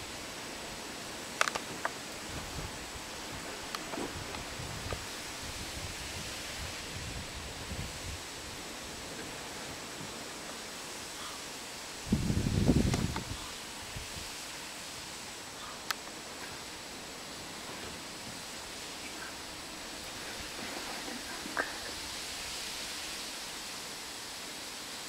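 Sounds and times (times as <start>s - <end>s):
rustling wind hiss: 0.0s - 25.0s
wind buffeting microphone: 1.7s - 10.2s, 12.0s - 14.4s.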